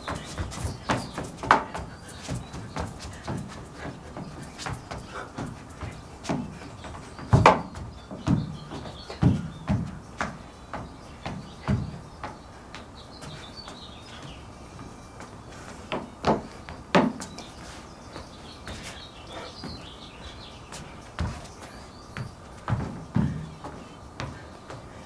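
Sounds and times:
dance steps on wooden deck: 0.0 - 25.0
faint birds chirping: 0.0 - 25.0.

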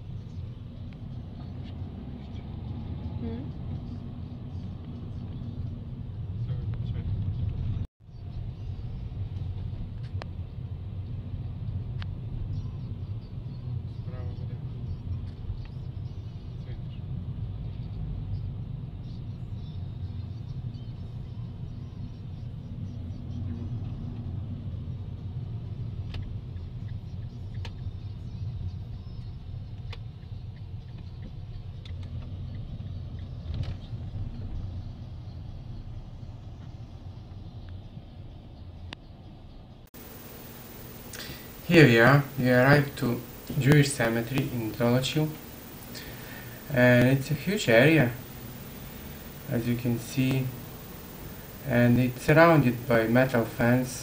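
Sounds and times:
car engine and road rumble: 0.0 - 54.0.

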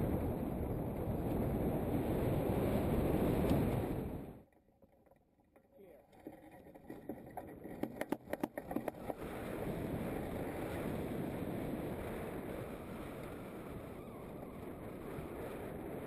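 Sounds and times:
wind buffeting microphone: 0.0 - 4.4, 6.2 - 16.0
sharp clicks and knocks: 4.5 - 9.2.

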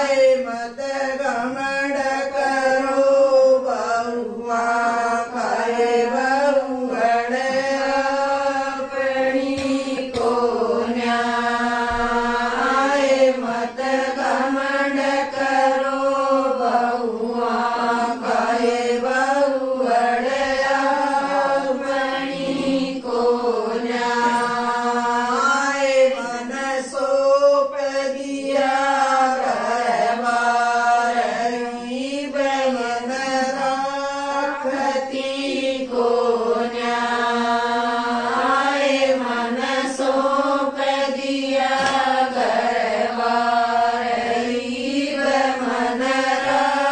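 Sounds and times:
women singing folk song: 0.0 - 46.9.

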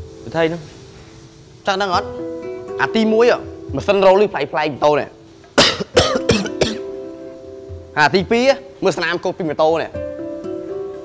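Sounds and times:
background music with held notes: 0.0 - 11.0
man coughing: 5.6 - 6.9.

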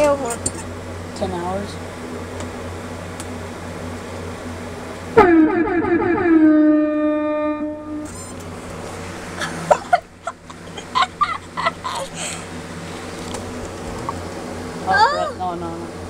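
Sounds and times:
steady low hum: 0.0 - 16.0
horn blast: 5.1 - 8.2.

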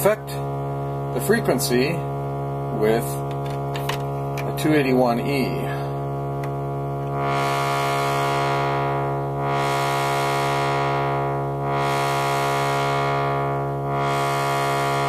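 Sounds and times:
filtered sawtooth synth tone: 0.0 - 15.0.

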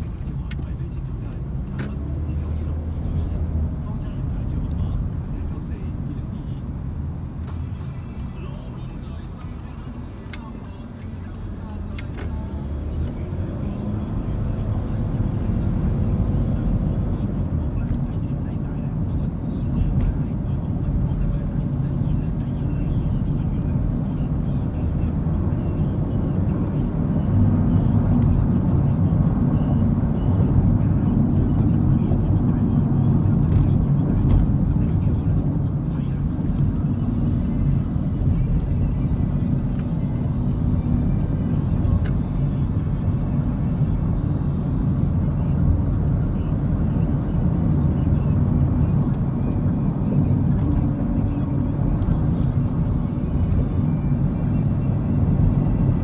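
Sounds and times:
car engine and tyre rumble: 0.0 - 56.0
faint music: 0.0 - 56.0.

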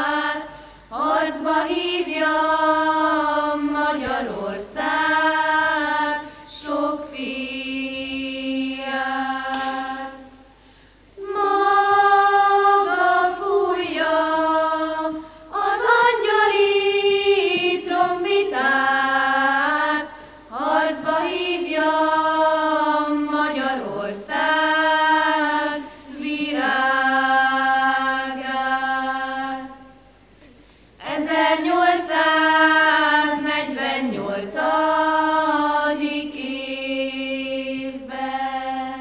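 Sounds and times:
children's choir singing: 0.0 - 10.6, 11.2 - 30.1, 31.0 - 39.0.

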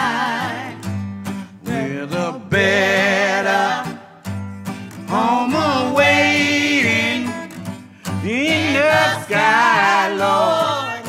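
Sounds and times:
person singing with vibrato: 0.0 - 4.3, 5.0 - 11.0
guitar notes and strums: 0.0 - 11.0.

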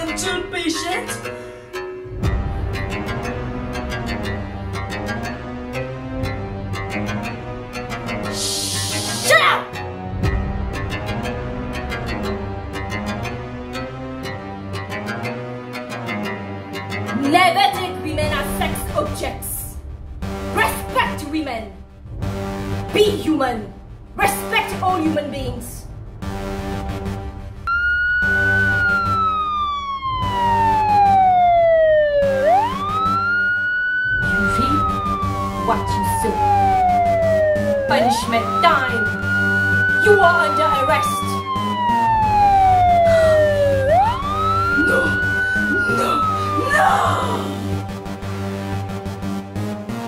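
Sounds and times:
woman speaking emphatically: 0.0 - 1.3, 9.2 - 9.8, 17.1 - 19.8, 20.5 - 21.8, 22.9 - 25.8, 34.4 - 34.9, 35.6 - 36.6, 37.9 - 39.1, 40.0 - 41.4, 44.8 - 47.6
background music: 0.0 - 50.0
police siren wailing: 26.4 - 49.0.

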